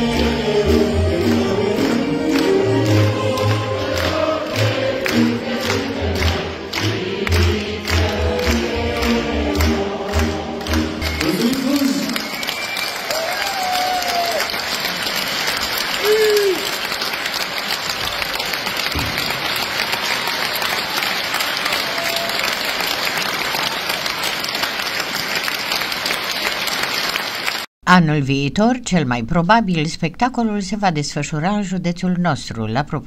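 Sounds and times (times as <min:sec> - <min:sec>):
stage music with steady beat: 0:00.0 - 0:12.2
audience applauding: 0:00.6 - 0:27.7
shouts from audience: 0:11.2 - 0:14.6, 0:16.0 - 0:16.8, 0:19.9 - 0:22.7.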